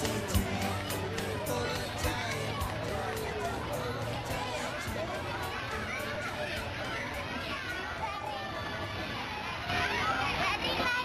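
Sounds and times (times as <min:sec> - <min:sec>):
background music: 0:00.0 - 0:06.4
children shouting: 0:00.0 - 0:11.0.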